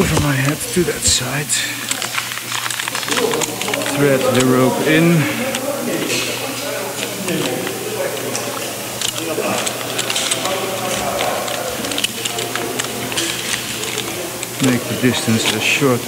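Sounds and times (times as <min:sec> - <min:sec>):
carabiners clicking: 0:00.0 - 0:16.0.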